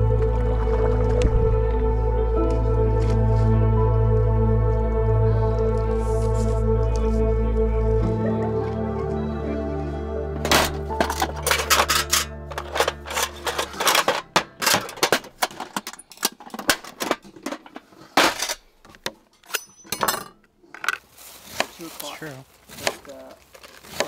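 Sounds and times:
background music: 0.0s - 18.6s
contents rattling in box: 10.5s - 18.6s.

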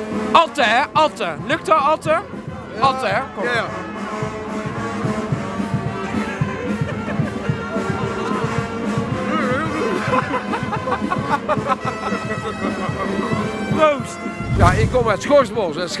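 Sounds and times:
people talking nearby: 0.4s - 4.5s, 5.2s - 16.0s
brass band music: 1.4s - 7.3s, 11.8s - 15.5s.

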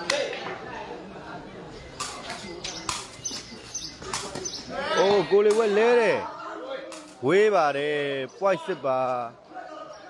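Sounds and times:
faint chatter of onlookers: 0.0s - 10.0s.

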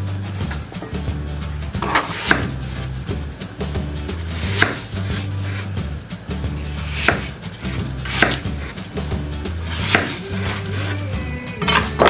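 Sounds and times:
knife striking cutting board: 1.8s - 2.9s, 4.2s - 5.8s, 6.5s - 8.8s, 9.7s - 11.0s
knife slicing apple: 1.8s - 3.0s, 4.0s - 5.8s, 6.5s - 12.0s.

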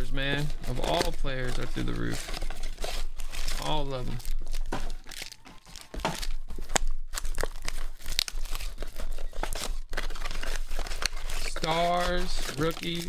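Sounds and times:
plastic wrap crinkling and tearing: 0.0s - 13.0s.

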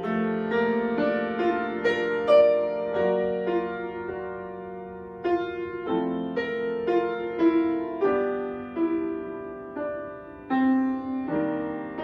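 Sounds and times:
solo grand piano chords and melody: 0.0s - 12.0s.

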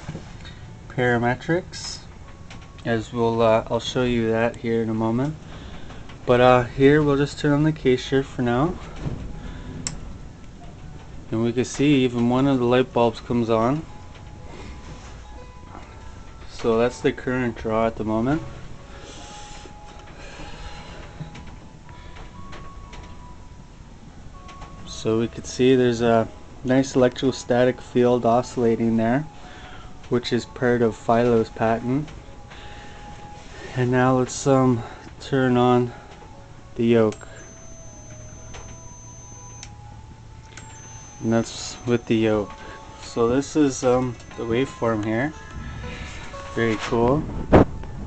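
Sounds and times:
electrical hum and hiss: 0.0s - 48.0s.

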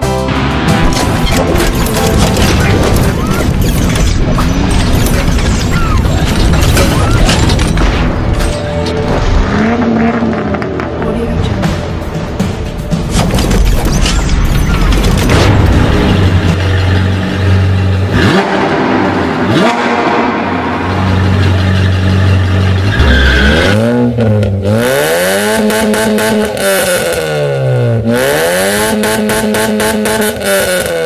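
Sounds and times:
low drone: 14.6s - 23.1s
loud rushing sound: 15.3s - 22.8s
sports car engine revving: 16.6s - 31.0s.

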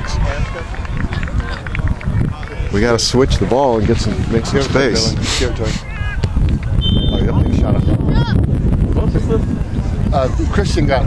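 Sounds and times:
faint voices of players: 0.0s - 11.0s
low uneven microphone rumble: 0.0s - 11.0s.

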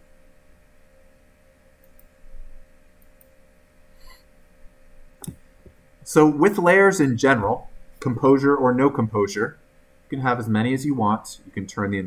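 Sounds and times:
faint electrical hum: 0.0s - 12.0s
faint clicks: 1.8s - 2.1s.

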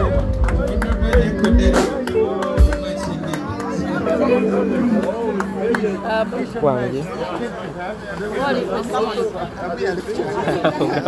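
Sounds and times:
music playing: 0.0s - 7.7s
people talking over one another: 0.0s - 11.0s.

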